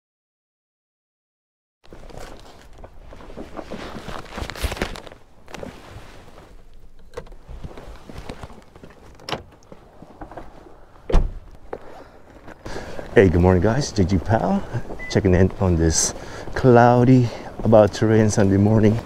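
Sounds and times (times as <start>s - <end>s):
bag and gear rustling: 1.9s - 17.8s
footsteps: 1.9s - 19.0s
loud thump: 11.1s - 11.5s.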